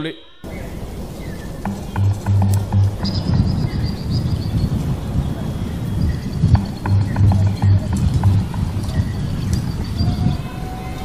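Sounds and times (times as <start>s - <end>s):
sharp clicks: 1.6s - 3.5s, 6.5s - 9.6s
film score with pounding beat: 1.6s - 4.6s, 6.4s - 9.3s.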